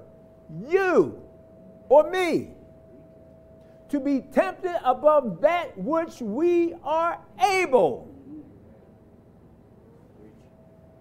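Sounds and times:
faint thin steady tone: 0:00.0 - 0:06.0
low steady hum: 0:00.0 - 0:11.0
low hum-like vocal sound: 0:08.0 - 0:09.1.

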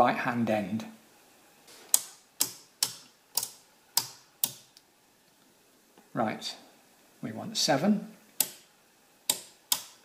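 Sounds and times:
toggle switch clicks: 0:01.9 - 0:04.9, 0:08.4 - 0:08.7, 0:09.3 - 0:10.0.

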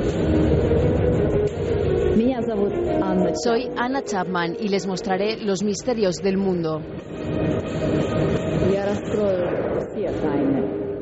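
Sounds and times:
rumbling drone: 0:00.0 - 0:11.0
steady tones: 0:00.0 - 0:11.0.

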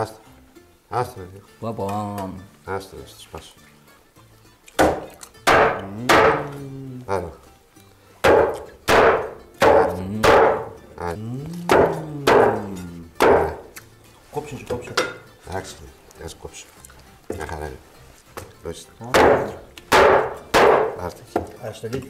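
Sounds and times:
cleaver chopping bones on wood: 0:04.7 - 0:06.6, 0:08.2 - 0:10.8, 0:11.6 - 0:13.8, 0:18.4 - 0:22.0.

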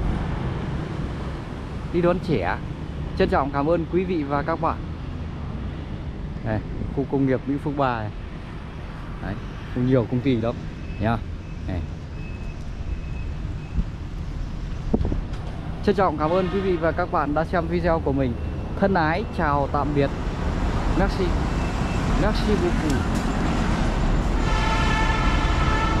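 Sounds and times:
road traffic: 0:00.0 - 0:26.0
wind on microphone: 0:14.7 - 0:15.4.

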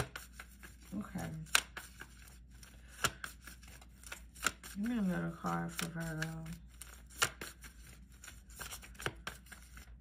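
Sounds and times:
cards sliding: 0:00.0 - 0:05.0, 0:05.7 - 0:10.0.

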